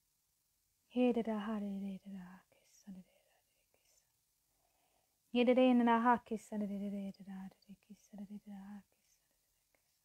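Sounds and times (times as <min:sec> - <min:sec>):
woman praying: 0:00.9 - 0:04.0, 0:05.4 - 0:09.2
soft whispering: 0:00.9 - 0:05.0, 0:06.2 - 0:10.0.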